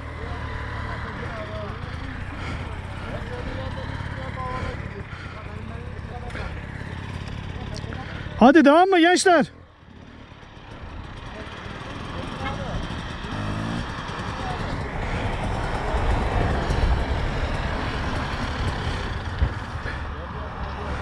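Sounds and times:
dirt bike engines running: 0.0s - 21.0s
dirt bike revving through gears: 9.8s - 20.1s.

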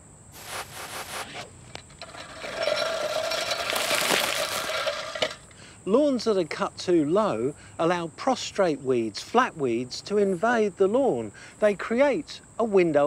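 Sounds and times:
crickets chirping: 0.0s - 13.0s
reel lawnmower blades whirring: 0.4s - 5.5s
clicks and rustles: 0.4s - 5.6s.

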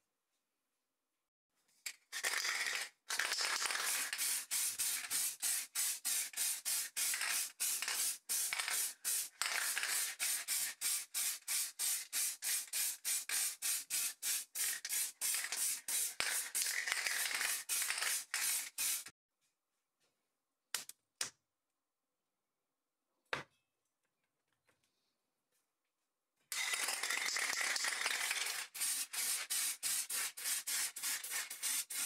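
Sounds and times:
aerosol spray can hissing: 3.2s - 19.1s, 27.2s - 32.0s.

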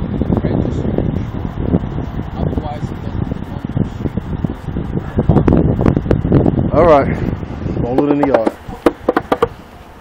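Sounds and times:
wind buffeting microphone: 0.0s - 10.0s
fingers rubbing on microphone: 8.0s - 9.5s.

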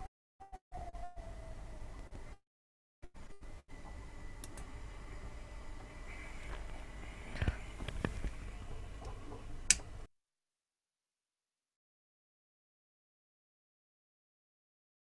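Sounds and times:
faint room noise: 3.0s - 10.1s
sharp clicks: 4.4s - 4.7s.

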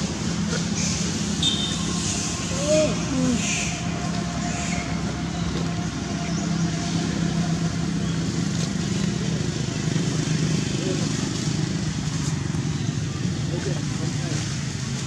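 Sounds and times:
engine droning: 0.0s - 15.0s.

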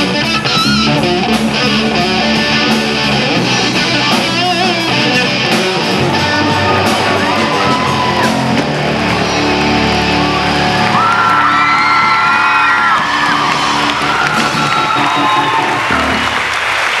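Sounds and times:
electric guitar chord ringing: 0.0s - 11.4s
audience cheering: 5.3s - 17.0s.

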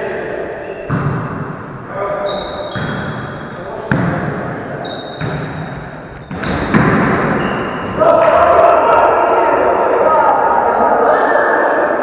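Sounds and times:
players' voices: 0.0s - 12.0s
sneaker squeaks on wooden floor: 0.3s - 1.2s, 2.2s - 8.0s
volleyball smack: 6.3s - 7.4s.

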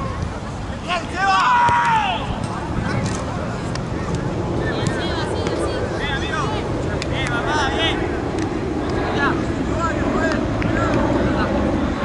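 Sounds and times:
players calling and shouting: 0.0s - 12.0s
steady low rumble: 2.2s - 12.0s.

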